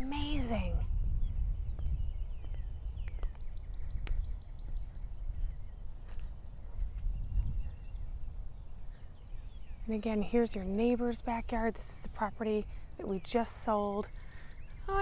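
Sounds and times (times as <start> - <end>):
birds chirping: 0.0 - 15.0
wind rumble on microphone: 0.0 - 15.0.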